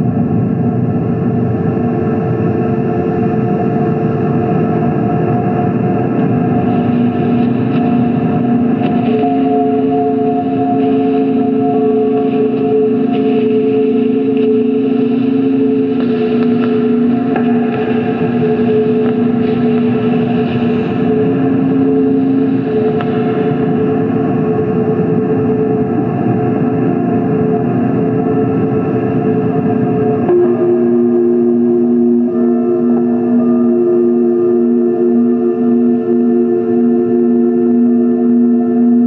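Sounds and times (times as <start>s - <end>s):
distorted noise bed: 0.0s - 39.0s
pulsing low tone: 0.0s - 39.0s
synthesizer drone: 0.0s - 39.0s.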